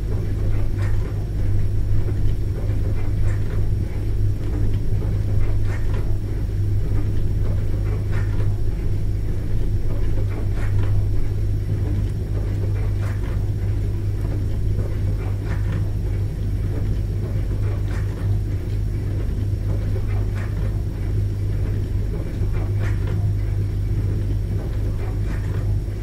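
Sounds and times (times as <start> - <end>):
dishwasher motor humming: 0.0 - 26.0.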